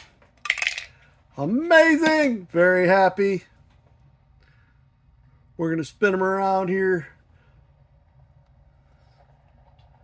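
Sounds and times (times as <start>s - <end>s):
faint low hum: 2.4s - 10.0s.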